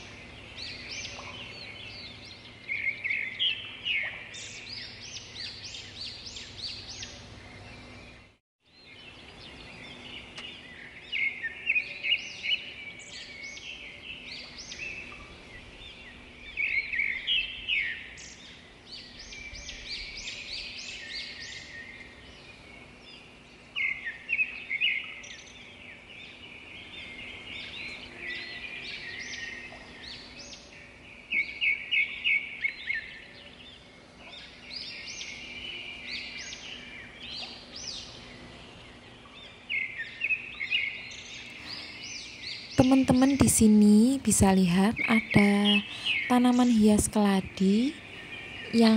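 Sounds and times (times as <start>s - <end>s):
small birds chirping: 0.0s - 48.9s.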